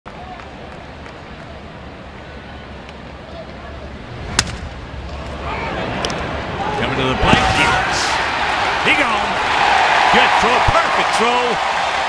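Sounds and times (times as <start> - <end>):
bat cracking on ball: 4.3 - 4.7.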